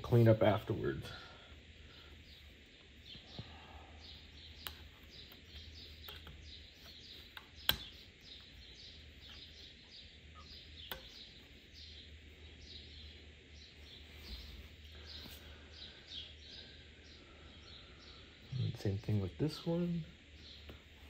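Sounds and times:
faint bird chirps: 0:00.0 - 0:21.0.

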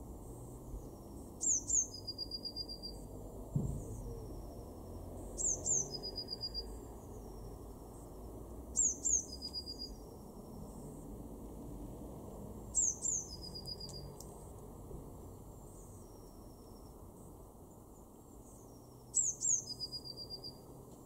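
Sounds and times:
bird singing with trill: 0:00.8 - 0:03.1, 0:05.4 - 0:07.7, 0:08.7 - 0:10.2, 0:12.7 - 0:14.2, 0:18.4 - 0:20.7.

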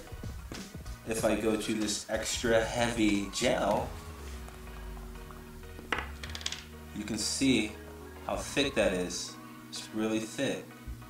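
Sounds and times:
soft background music: 0:00.0 - 0:11.0.

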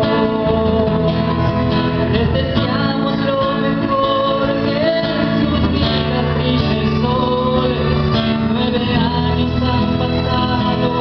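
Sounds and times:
classical guitar strumming: 0:00.0 - 0:11.0
man singing a ballad: 0:00.0 - 0:11.0.

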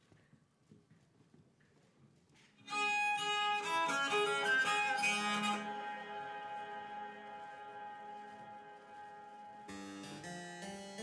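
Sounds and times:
footsteps on runway: 0:00.0 - 0:02.7.

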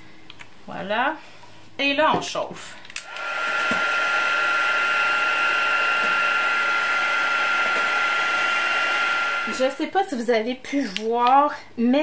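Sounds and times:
heat gun fan whining: 0:02.9 - 0:10.0.

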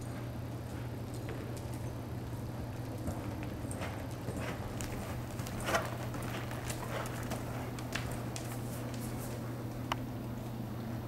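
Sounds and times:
horse hoofbeats on soft dirt: 0:00.0 - 0:09.8.

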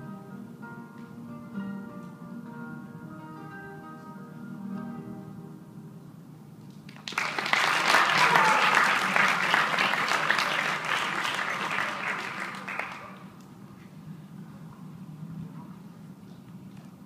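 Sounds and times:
audience applauding: 0:06.9 - 0:13.3.

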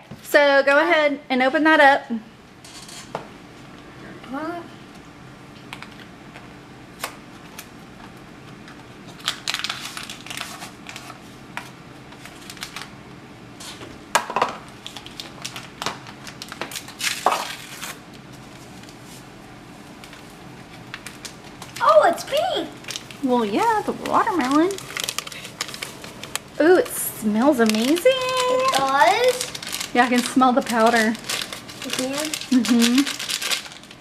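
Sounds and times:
paper packet crinkling and tearing: 0:08.6 - 0:11.3, 0:12.2 - 0:13.0, 0:14.7 - 0:19.0, 0:20.0 - 0:34.0.

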